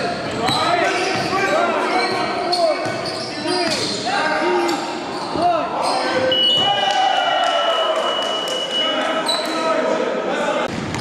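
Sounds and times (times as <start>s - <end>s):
shoes squeaking on gym floor: 0.3s - 6.8s.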